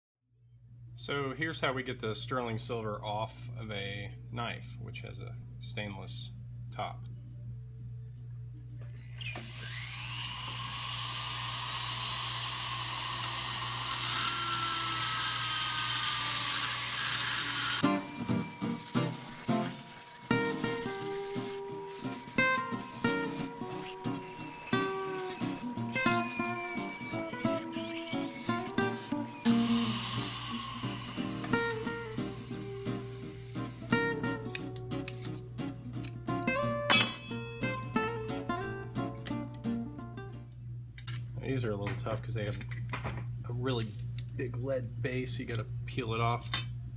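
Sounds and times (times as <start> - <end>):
rotary tool grinding whine: 9.1 - 35.3
plucked guitar music: 17.8 - 30.3, 33.6 - 40.6.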